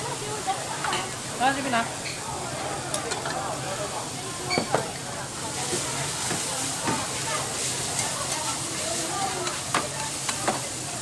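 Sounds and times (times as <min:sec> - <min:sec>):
vegetables sizzling on griddle: 0:00.0 - 0:11.0.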